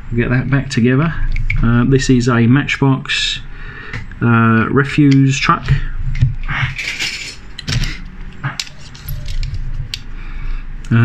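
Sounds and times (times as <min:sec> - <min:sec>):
metal toy cars clinking: 0:06.8 - 0:10.0.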